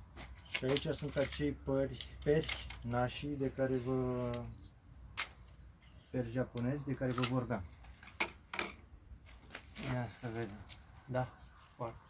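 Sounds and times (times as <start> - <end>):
man speaking: 0.6 - 4.6, 6.1 - 7.7, 9.8 - 12.0.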